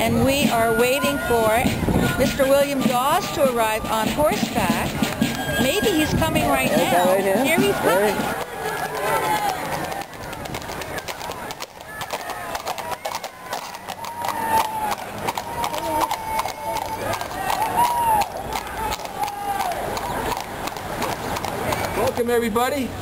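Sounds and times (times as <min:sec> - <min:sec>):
hooves clip-clopping on asphalt: 0:00.0 - 0:22.9
people's voices: 0:00.0 - 0:23.0.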